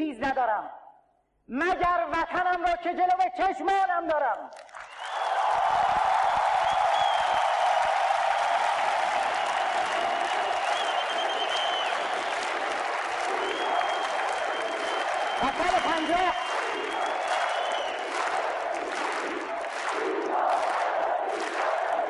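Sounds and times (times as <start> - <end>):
crowd applauding: 4.5 - 22.0.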